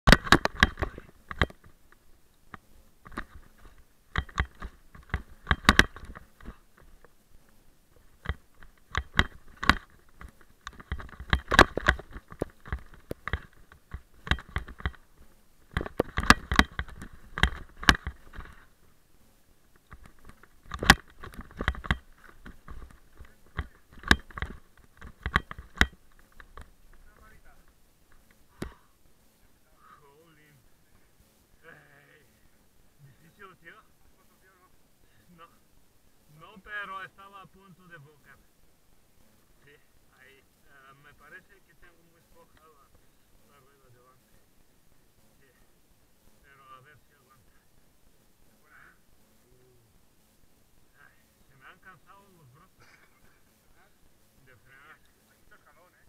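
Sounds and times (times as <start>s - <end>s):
mountain bike clattering over rocks: 0.1s - 1.7s, 3.0s - 7.0s, 8.1s - 15.1s, 15.7s - 18.7s, 19.8s - 27.2s.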